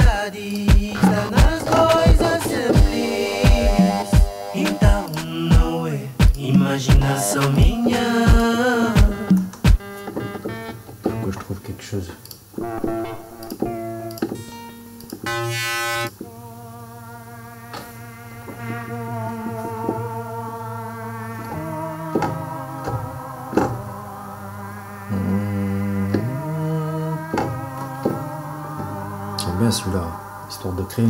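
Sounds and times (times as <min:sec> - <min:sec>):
synthesizer notes and chords: 0:00.8 - 0:11.3, 0:12.6 - 0:16.2.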